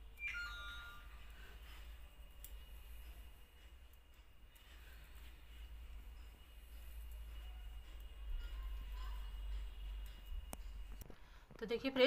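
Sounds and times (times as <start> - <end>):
ringing tone: 0.2 - 1.5.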